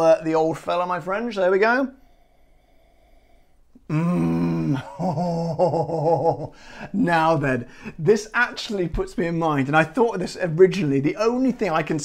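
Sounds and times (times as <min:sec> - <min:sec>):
breathy exhale: 0:01.9 - 0:03.9
man humming laugh: 0:03.9 - 0:06.6.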